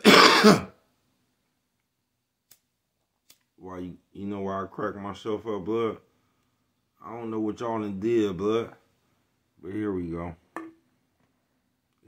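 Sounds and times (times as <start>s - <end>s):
man coughing: 0.0s - 0.8s.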